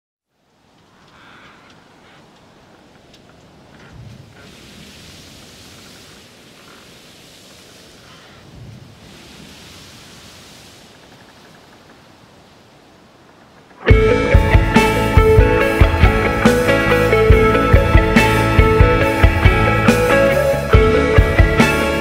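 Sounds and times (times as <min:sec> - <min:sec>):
soft washing surf-like noise: 0:00.3 - 0:13.9
band with guitars and drums: 0:13.8 - 0:22.0.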